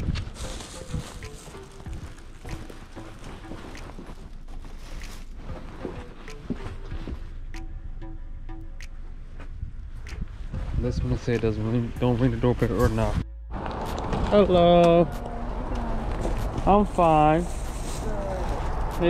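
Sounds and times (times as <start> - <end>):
grocery bag rustling: 0.0 - 6.2, 16.2 - 18.9
footsteps: 0.0 - 7.7
background music: 0.0 - 19.0.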